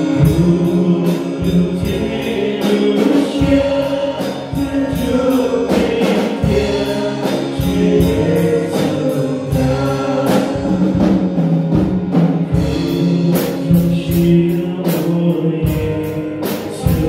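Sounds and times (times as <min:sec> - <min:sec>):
male group singing in harmony: 0:00.0 - 0:17.0.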